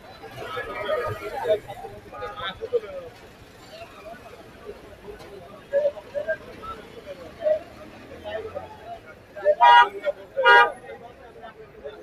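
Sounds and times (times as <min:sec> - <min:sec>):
street market chatter: 0:00.0 - 0:12.0
vehicle horn honks: 0:09.6 - 0:10.8.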